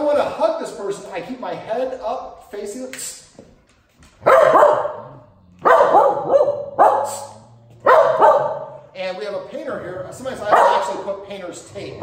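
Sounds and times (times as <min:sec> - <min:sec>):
dog barking loudly: 0:04.2 - 0:08.9, 0:10.4 - 0:11.0.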